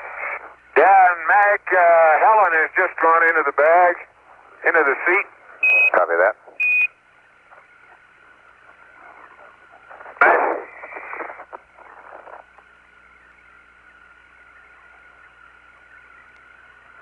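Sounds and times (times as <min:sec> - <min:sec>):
garbled radio transmission: 0:00.0 - 0:13.0
radio static hiss: 0:00.0 - 0:17.0.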